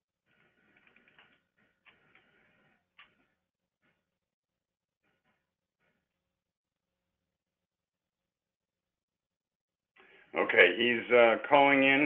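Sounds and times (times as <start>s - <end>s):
faint scratchy rustling: 0.3s - 4.2s.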